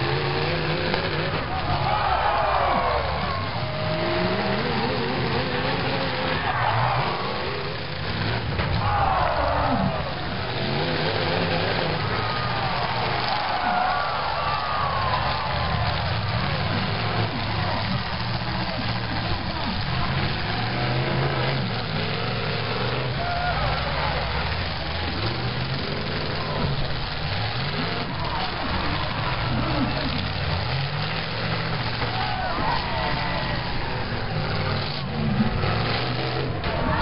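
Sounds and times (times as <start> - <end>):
car engines revving: 0.0 - 37.0
crowd voices: 0.0 - 37.0.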